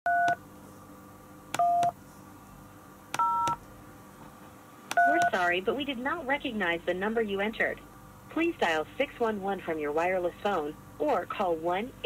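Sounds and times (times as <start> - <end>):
telephone keypad tones: 0.1 - 0.4, 1.6 - 1.9, 3.2 - 3.6, 4.9 - 5.4.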